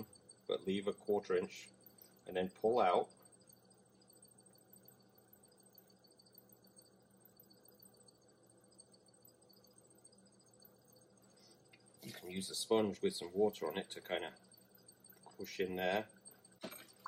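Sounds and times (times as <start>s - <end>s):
potter's wheel motor hum: 0.0s - 17.0s.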